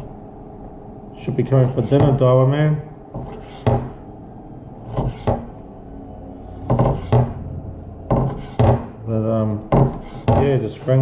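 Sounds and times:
knife knocking on wooden board: 0:06.7 - 0:07.4, 0:08.1 - 0:09.0, 0:09.7 - 0:10.5.

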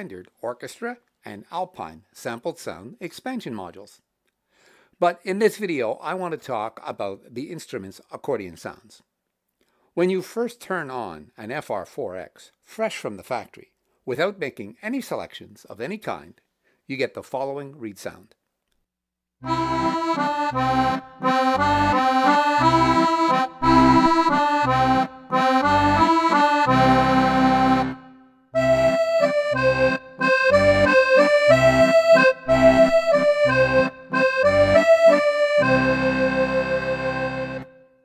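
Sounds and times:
accordion playing: 0:19.4 - 0:38.0.

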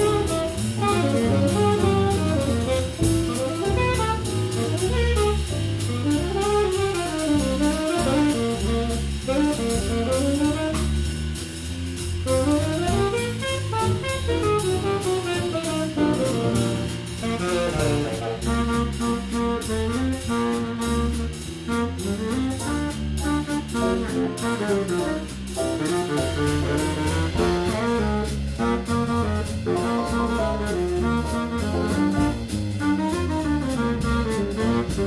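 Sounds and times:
bass line: 0:00.0 - 0:35.0
drum kit with cymbal ticks: 0:00.0 - 0:35.0.

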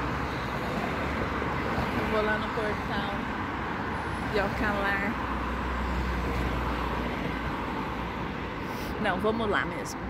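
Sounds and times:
passing cars and engines: 0:00.0 - 0:10.0.

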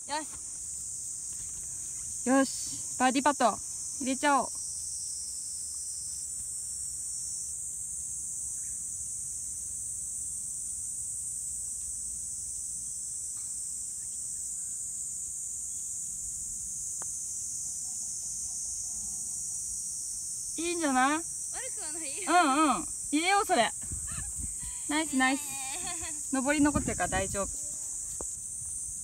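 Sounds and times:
insect chorus: 0:00.0 - 0:29.0.

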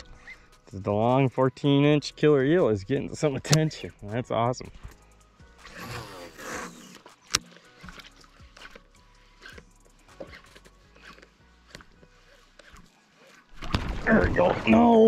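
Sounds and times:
fishing reel ticking: 0:05.0 - 0:13.5.

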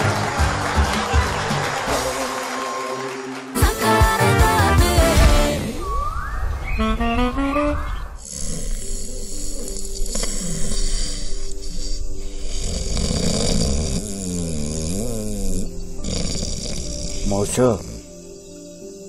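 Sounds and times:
man snoring: 0:08.2 - 0:19.0.

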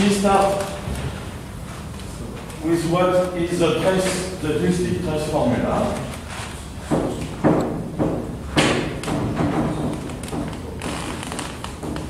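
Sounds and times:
eraser knocking on chalkboard: 0:06.8 - 0:10.6.

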